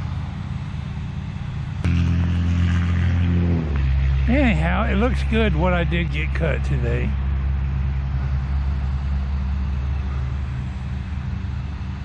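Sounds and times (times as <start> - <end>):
lawn mower engine running: 0.0 - 12.0.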